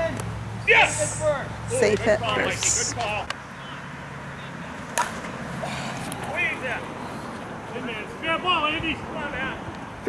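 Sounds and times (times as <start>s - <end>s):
distant voices calling out: 0.0s - 10.0s.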